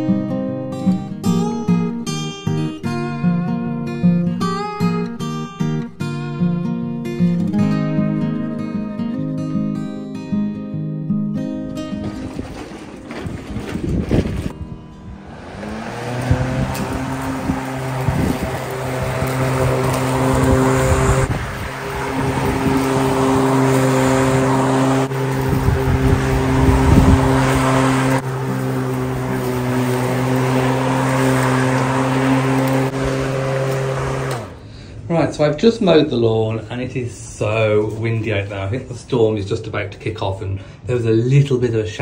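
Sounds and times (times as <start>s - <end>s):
electric lawnmower motor humming: 11.8s - 34.7s
wind gusting on microphone: 11.9s - 34.2s.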